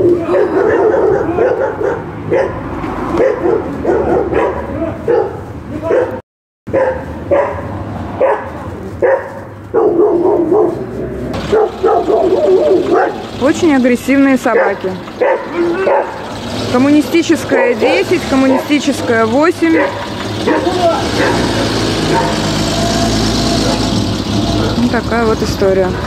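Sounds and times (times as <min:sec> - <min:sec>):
dogs barking aggressively: 0:00.0 - 0:24.9.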